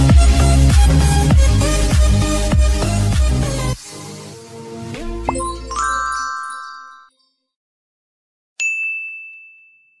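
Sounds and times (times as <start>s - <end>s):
bright bell ding: 5.3s - 7.3s, 8.6s - 10.0s.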